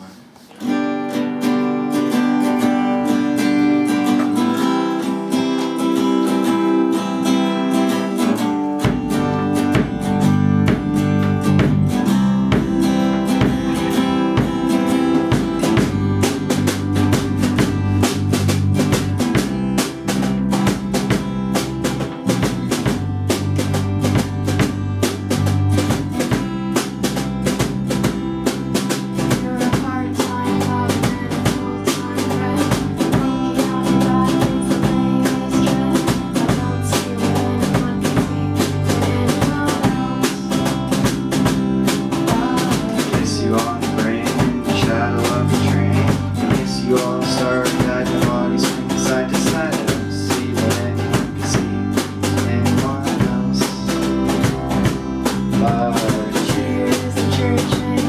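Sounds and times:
acoustic guitar strumming: 0.0 - 58.0
drum kit and bass: 1.8 - 58.0.

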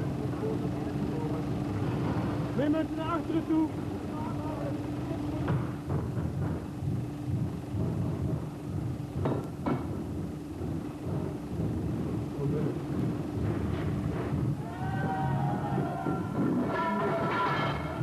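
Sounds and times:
low uneven rumbling: 0.0 - 18.0
steady low hum: 0.0 - 18.0
sharp knocks: 5.4 - 17.4.

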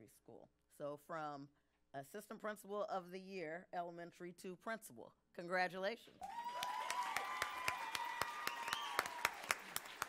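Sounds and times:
audience applause: 6.2 - 10.0
people cheering: 6.2 - 10.0.

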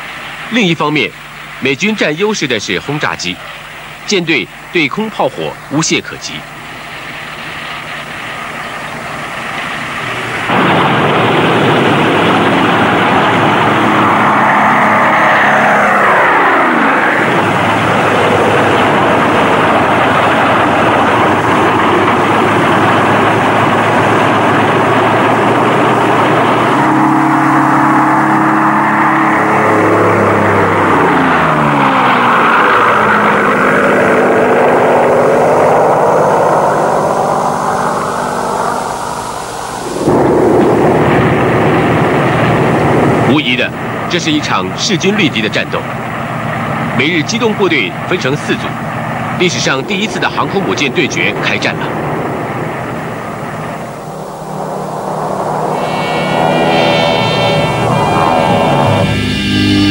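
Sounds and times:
loud steady drone: 0.0 - 59.9
propeller aircraft flying past: 6.4 - 59.9.

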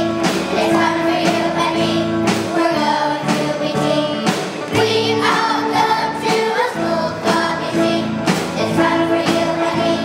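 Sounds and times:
children's choir singing: 0.0 - 10.0
live rock band: 0.0 - 10.0.

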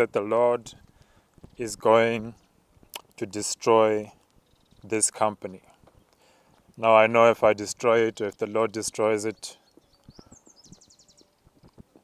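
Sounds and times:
small bird chirping: 4.2 - 5.0, 8.4 - 12.0.

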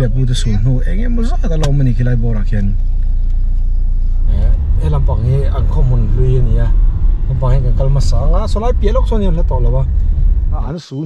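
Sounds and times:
person talking: 0.0 - 2.7
car rumbling on the move: 0.0 - 10.8.

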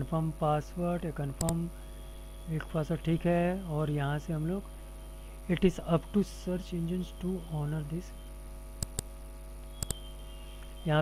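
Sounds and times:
electrical mains hum: 0.0 - 11.0
computer mouse clicks: 8.8 - 9.1, 9.8 - 10.0.

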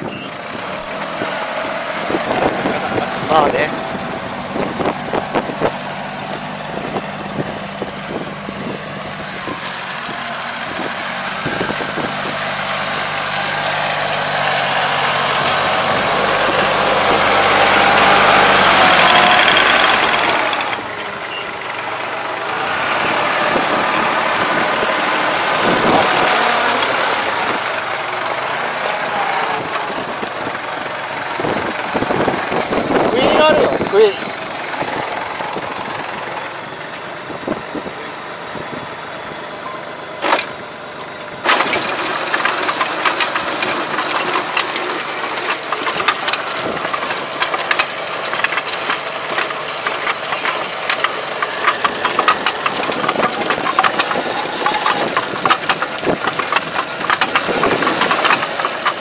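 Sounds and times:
machine working soil: 0.0 - 59.0
tractor diesel engine running: 0.0 - 59.0.

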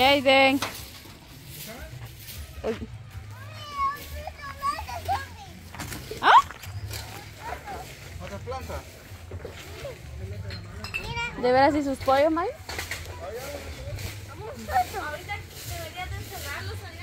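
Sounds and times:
children chattering and calling: 2.2 - 8.2, 12.9 - 17.0.

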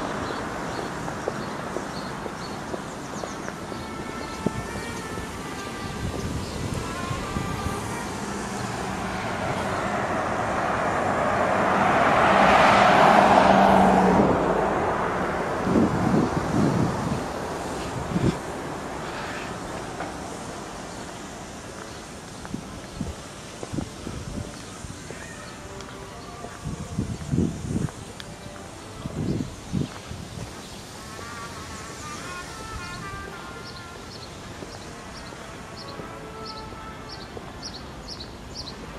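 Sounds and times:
faint thin melody: 3.8 - 9.9, 24.0 - 27.3, 31.0 - 37.6
car passing by: 5.4 - 22.1.

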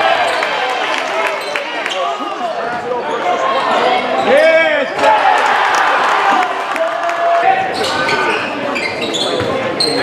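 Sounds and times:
voices of players and spectators: 0.0 - 10.0.

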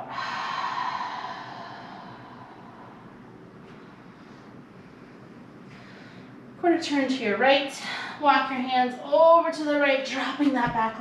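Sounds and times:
woman breathing out: 0.0 - 3.2.

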